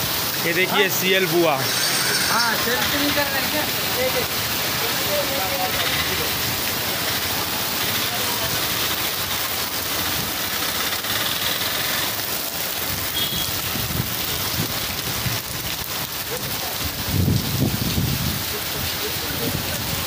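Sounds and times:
heavy rain on standing water: 0.0 - 20.0.

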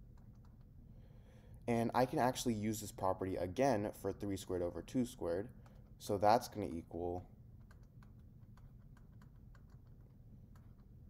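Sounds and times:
stylus clicks and taps: 0.1 - 0.7, 7.6 - 11.0.

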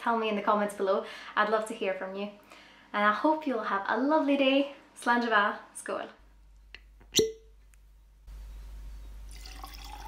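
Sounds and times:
water drop plink: 7.2 - 7.5.

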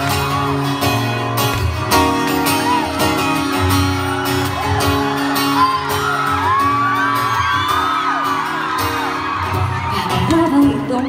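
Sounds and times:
acoustic guitar music: 0.0 - 11.0
crowd screaming and whooping: 1.6 - 11.0.

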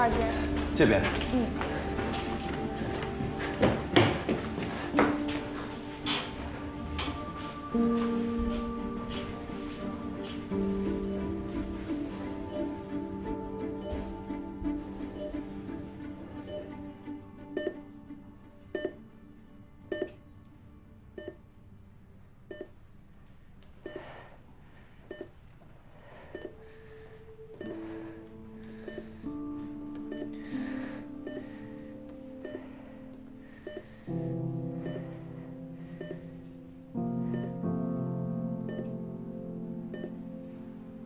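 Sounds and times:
soft background music: 0.0 - 41.0
patient monitor beeps: 9.6 - 14.4, 15.0 - 15.5, 16.4 - 17.9, 18.7 - 19.0, 19.9 - 20.2, 21.2 - 21.4, 22.5 - 22.8, 23.8 - 24.2, 25.1 - 25.4, 26.2 - 26.7, 27.5 - 28.2, 28.8 - 31.8, 32.4 - 32.9, 33.5 - 34.1, 34.8 - 35.2, 35.8 - 36.4, 37.2 - 37.7, 38.6 - 39.0, 39.9 - 40.3.

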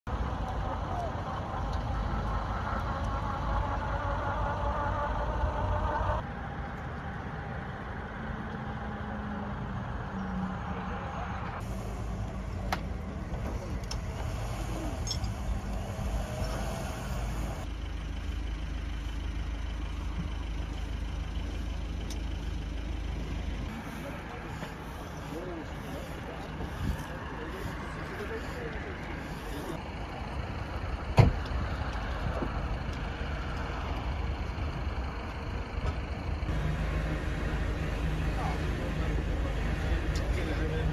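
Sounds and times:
people's voices: 0.1 - 5.0, 10.6 - 17.6, 23.7 - 31.3, 36.9 - 40.9
idling vehicle engines: 0.1 - 40.9.

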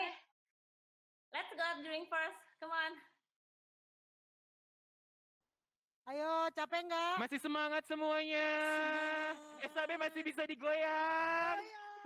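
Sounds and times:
spoken word: 8.4 - 10.4.

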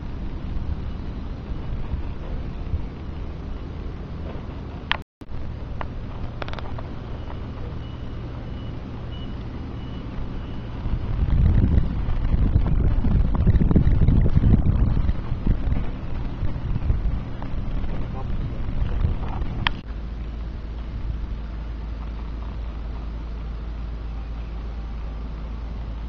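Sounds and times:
wind buffeting microphone: 0.0 - 19.9
low engine hum: 0.0 - 26.0
faint high beep: 7.0 - 10.8.

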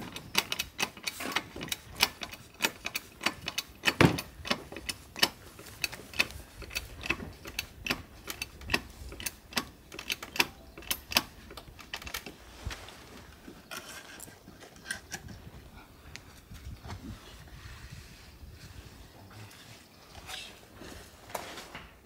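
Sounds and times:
hydraulic jack pump clicking: 0.0 - 12.4.

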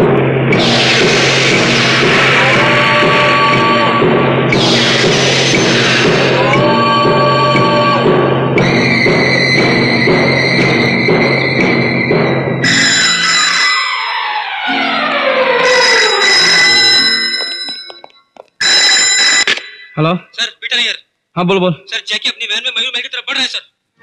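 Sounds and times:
dramatic film score chords: 0.0 - 17.7
landline telephone ringing: 12.7 - 20.2.

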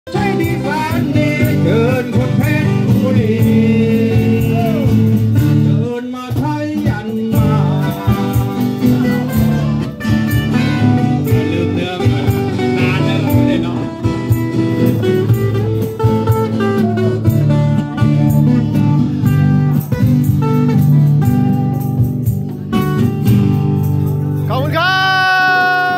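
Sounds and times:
bass guitar: 0.0 - 25.9
man singing into microphone: 0.1 - 10.1, 11.2 - 14.0
strummed acoustic guitar: 0.1 - 24.8.

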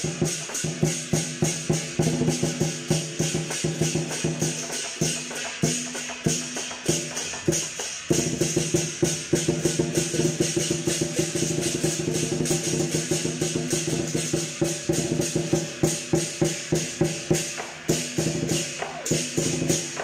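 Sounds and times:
clashing cymbals: 0.0 - 20.0
drum beating fast: 0.0 - 20.0.

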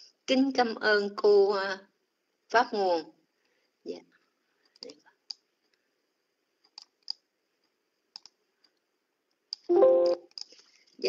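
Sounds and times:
low steady hiss: 0.0 - 11.0
faint scattered clicks: 6.6 - 10.6.

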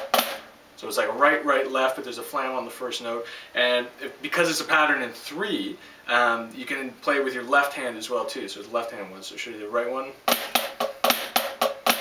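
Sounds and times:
drumsticks striking practice pad: 0.0 - 0.5, 10.3 - 12.0.

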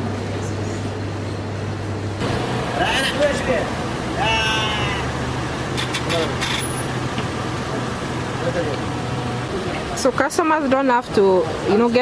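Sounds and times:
indistinct voices: 2.7 - 6.5
drawn-out call: 4.2 - 5.2.

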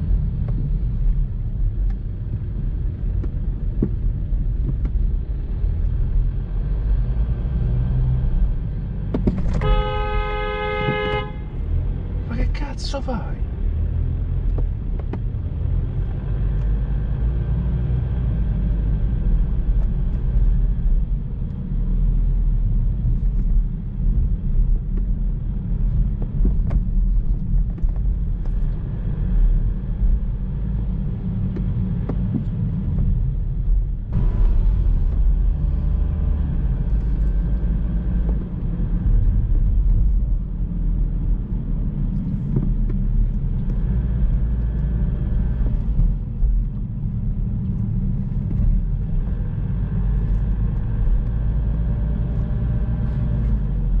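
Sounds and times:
road rumble inside car: 0.0 - 54.0.

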